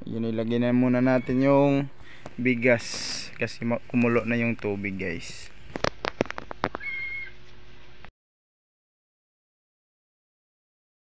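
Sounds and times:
steady hiss: 1.8s - 5.9s
short high squeak: 6.8s - 7.4s.

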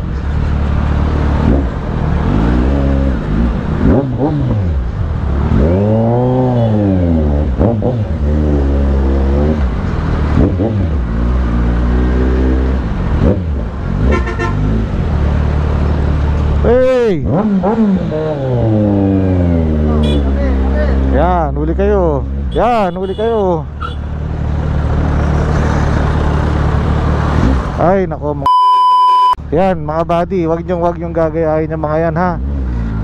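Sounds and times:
motorcycle engine idling and revving: 0.0s - 28.1s, 29.9s - 33.0s.

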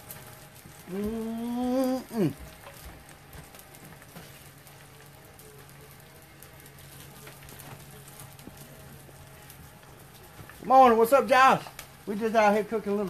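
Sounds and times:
small crackles: 0.0s - 13.0s.

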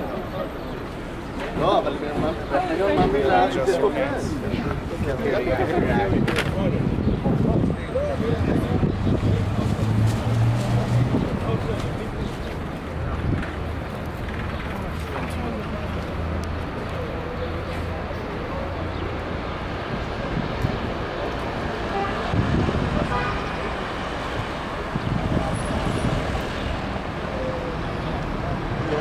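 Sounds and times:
people talking indistinctly: 0.0s - 29.0s
road traffic rumble: 0.0s - 29.0s.

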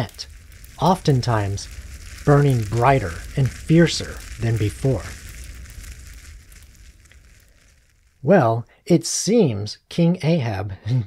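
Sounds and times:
fire crackling: 0.0s - 9.4s.

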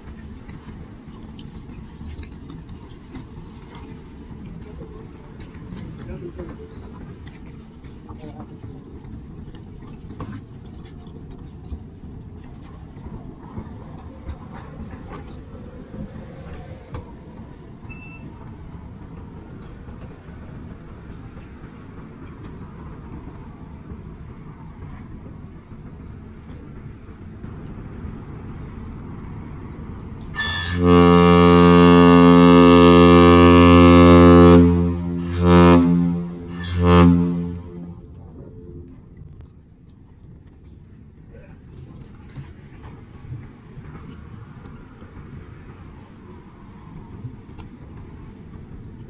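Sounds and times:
low rumble of ship: 0.0s - 49.0s
ship's horn blast: 30.3s - 39.2s.

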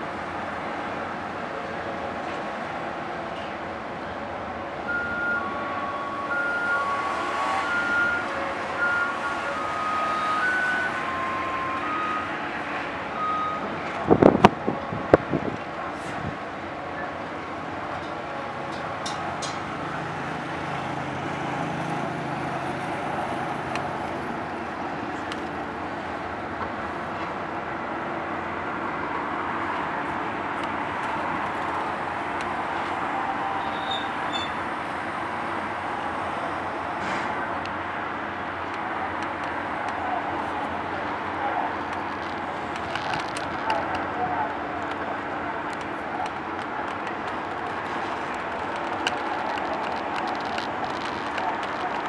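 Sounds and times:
ship engines rumbling: 0.0s - 52.0s.

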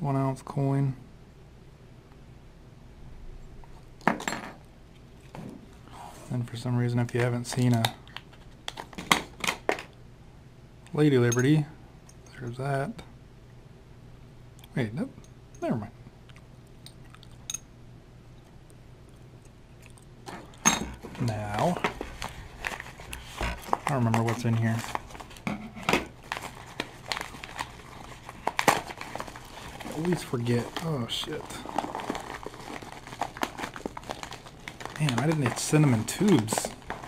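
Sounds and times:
faint steady hum: 0.0s - 37.0s
paper envelope crinkling: 20.3s - 37.0s.

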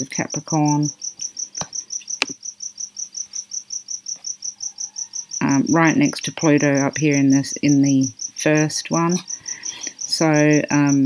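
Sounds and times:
cricket chirping: 0.0s - 11.0s.

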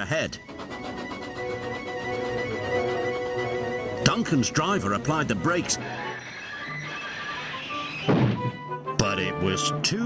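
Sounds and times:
background music: 0.0s - 10.0s
model steam engine crashing thud: 8.0s - 8.6s.

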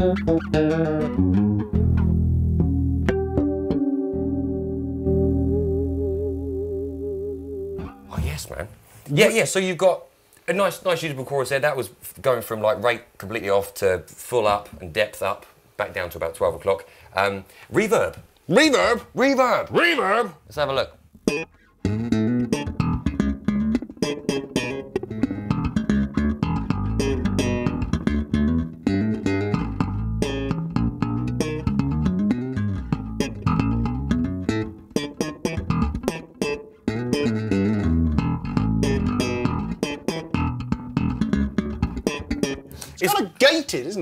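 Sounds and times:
electric bass plucked notes: 0.0s - 8.4s, 21.1s - 42.8s.

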